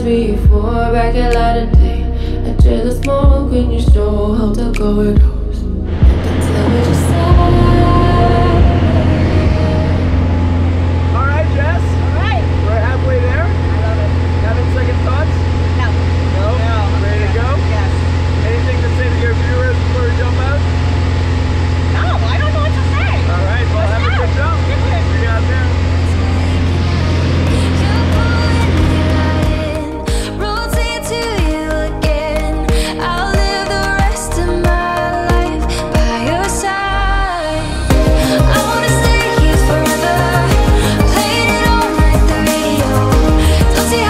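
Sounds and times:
indistinct voices talking: 0.0 - 44.0
propeller plane engine drone: 5.6 - 44.0.

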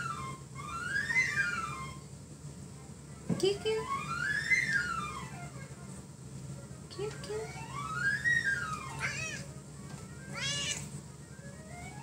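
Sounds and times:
cat meowing: 10.3 - 10.9.

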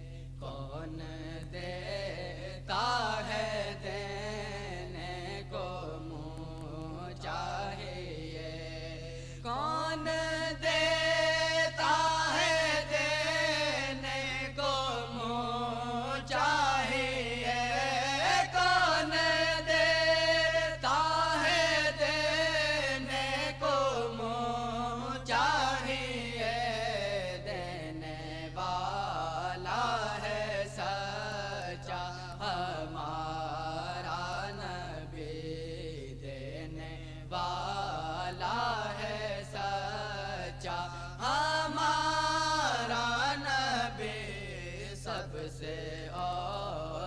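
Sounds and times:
low tape hum: 0.0 - 47.0
man chanting devotional poem: 0.0 - 47.0
man singing unaccompanied: 0.0 - 47.0.

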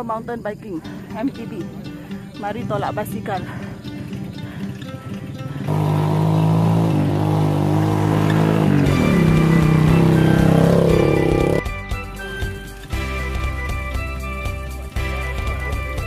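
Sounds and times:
background music: 0.0 - 16.0
small motorcycle engine running: 4.0 - 11.6.

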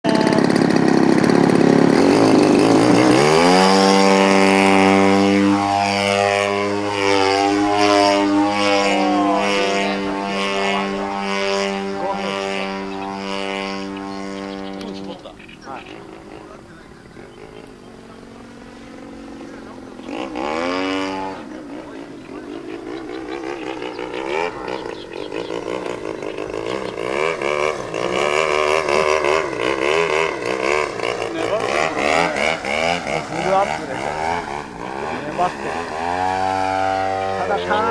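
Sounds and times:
model airplane engine: 0.0 - 37.9.

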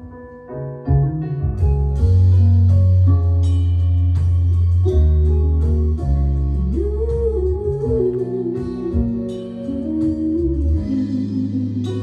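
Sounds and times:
slow live band music: 0.0 - 12.0
woman singing with vibrato: 6.2 - 12.0.

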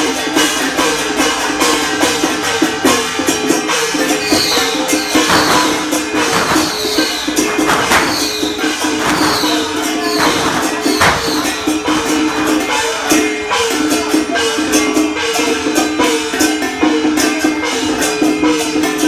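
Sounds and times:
procession music with percussion: 0.0 - 19.0.

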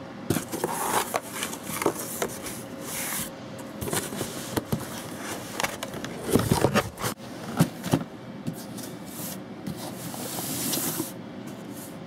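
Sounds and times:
cardboard flaps scraping and rustling: 0.3 - 11.2.

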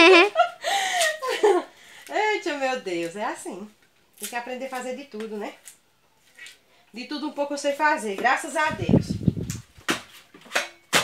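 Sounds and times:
coconut husk crackles and knocks: 2.9 - 6.6.

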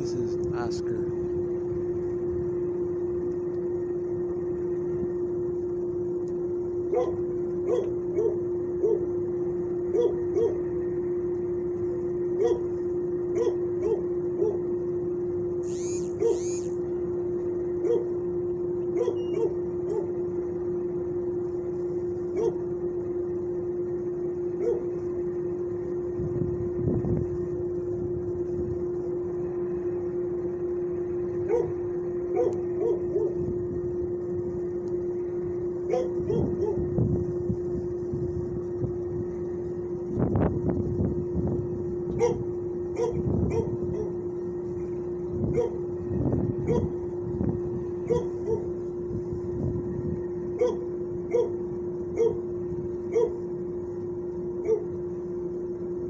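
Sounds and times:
steady low hum: 0.0 - 56.0
dogs barking: 6.9 - 9.1, 9.9 - 10.7, 12.4 - 12.7, 13.3 - 14.7, 16.2 - 16.6, 17.8 - 18.2, 18.9 - 20.2, 22.3 - 22.7, 24.6 - 25.0, 31.4 - 33.4, 35.9 - 36.9, 42.2 - 44.2, 45.5 - 45.8, 46.6 - 47.0, 48.0 - 48.8, 50.6 - 52.5, 53.1 - 53.5, 54.6 - 54.9
high-pitched squeaks: 15.6 - 16.8.

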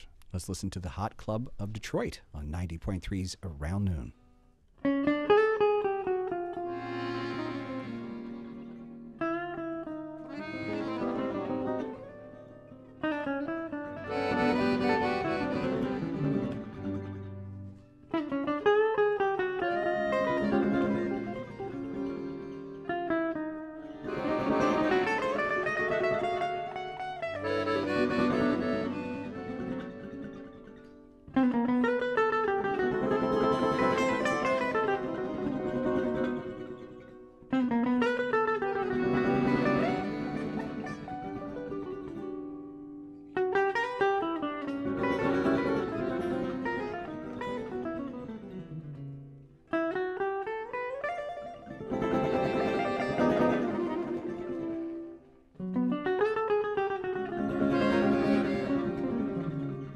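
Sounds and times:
plucked acoustic guitar chords: 0.0 - 59.9
accordion melody: 6.2 - 18.7, 19.4 - 36.9, 38.0 - 42.3, 43.8 - 48.1, 51.9 - 55.2, 57.0 - 59.9.

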